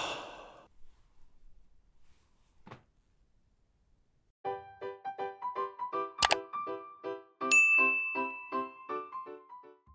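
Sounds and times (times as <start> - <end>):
bright bell ding: 7.5 - 8.9.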